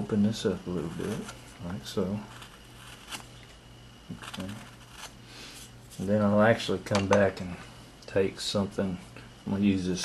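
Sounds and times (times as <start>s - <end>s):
low steady hum: 0.0s - 10.0s
knife scraping wood: 0.7s - 1.4s, 2.2s - 3.3s, 4.1s - 6.0s.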